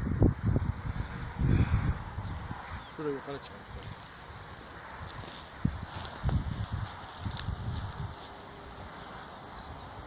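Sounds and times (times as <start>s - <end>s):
wind hiss: 0.0s - 10.0s
footsteps on dry grass: 3.4s - 9.4s.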